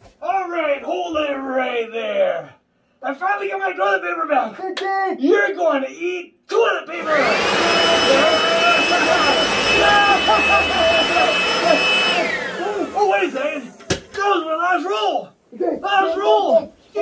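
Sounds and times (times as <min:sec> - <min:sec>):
leaf blower whine: 0:07.0 - 0:14.2.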